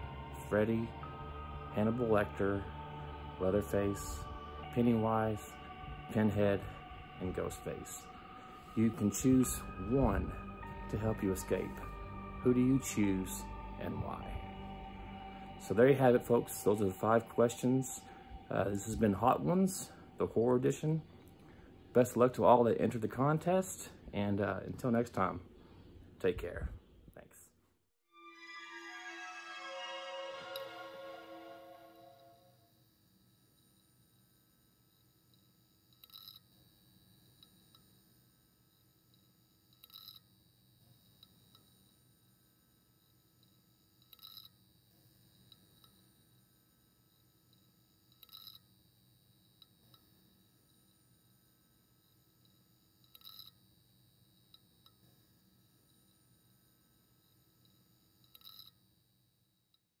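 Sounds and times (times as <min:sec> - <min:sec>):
background music: 0:00.0 - 0:23.9, 0:28.1 - 0:32.6
faint steady hum: 0:00.0 - 0:27.4.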